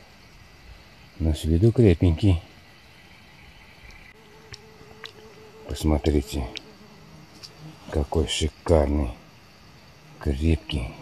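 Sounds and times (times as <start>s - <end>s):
flying insect buzzing: 2.0s - 11.0s
tiny ticks: 3.8s - 5.4s, 6.5s - 6.7s.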